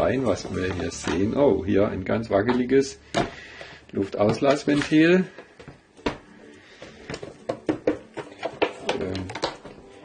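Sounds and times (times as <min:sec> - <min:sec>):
plastic lid clicks and knocks: 0:07.1 - 0:09.7.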